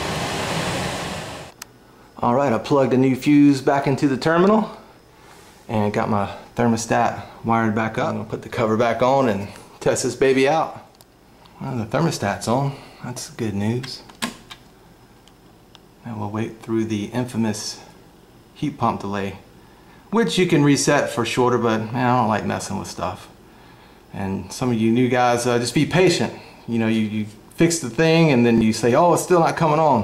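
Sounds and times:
blower fan rushing: 0.0 - 30.0.

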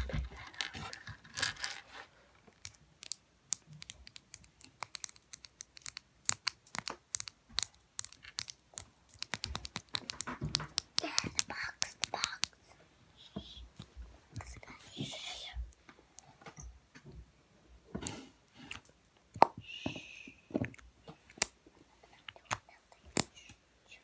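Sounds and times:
soft whisper: 11.0 - 15.8, 19.6 - 20.6, 21.8 - 24.0.

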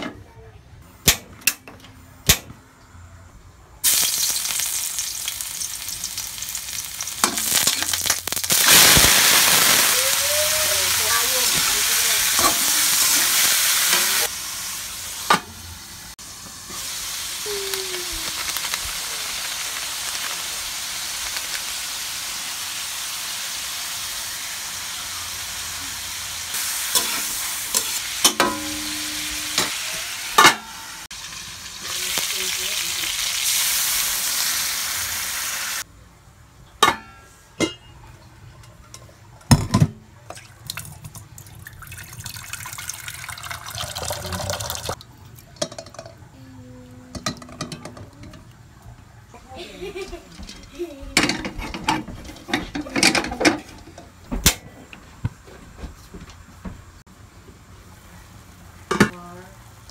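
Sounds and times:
chicken sizzling in wok: 3.8 - 35.9
pot set down on grate: 38.9 - 40.0.

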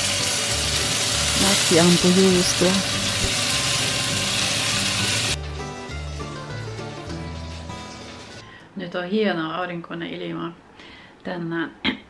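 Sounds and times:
sausages sizzling in a frying pan: 0.0 - 5.4
background music: 0.0 - 9.4.

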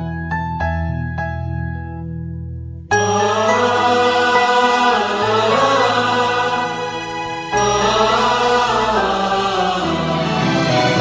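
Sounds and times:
film soundtrack music with chanting: 2.9 - 11.0.

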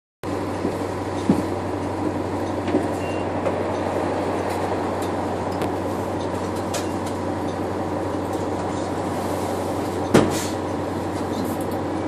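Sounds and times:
bus diesel engine drone: 0.2 - 12.0
low hum: 0.2 - 12.0.

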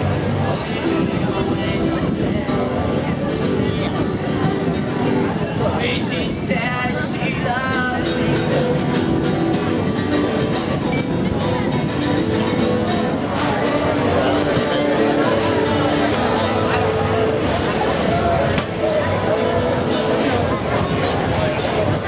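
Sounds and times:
acoustic guitar strumming: 0.0 - 22.0
people's voices: 0.0 - 22.0.

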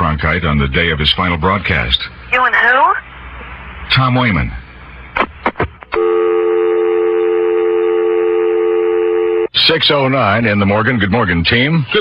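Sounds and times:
telephone dial tone: 6.0 - 9.5.

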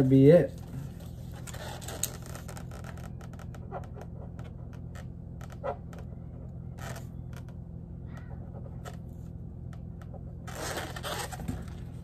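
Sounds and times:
rubbery balloon squeaks: 1.0 - 9.3, 10.0 - 12.0.

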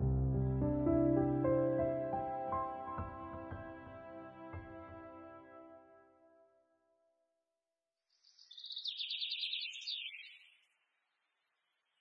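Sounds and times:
soft background music: 0.0 - 6.5
songbird chirping: 8.1 - 12.0.

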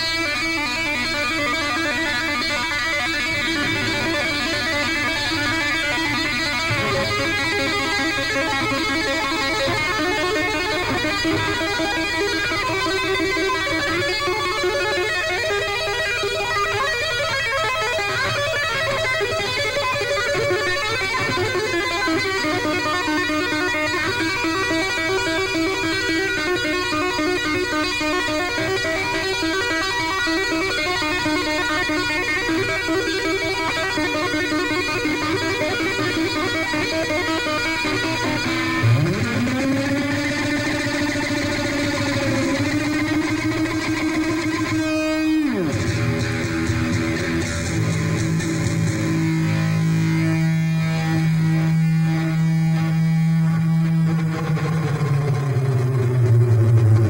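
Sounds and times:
electric guitar solo: 0.0 - 57.0.

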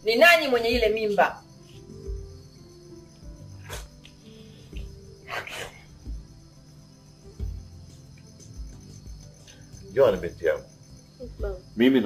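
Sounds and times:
crickets chirring: 0.0 - 12.0
background music thumps: 0.1 - 12.0.

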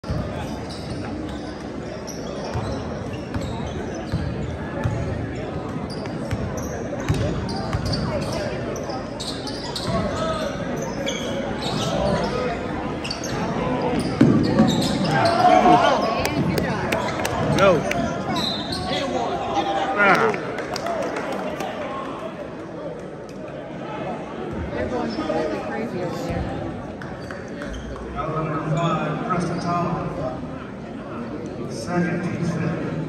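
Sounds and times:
spectators talking: 0.0 - 33.0
sneaker squeaks: 0.1 - 19.2, 27.2 - 28.0.

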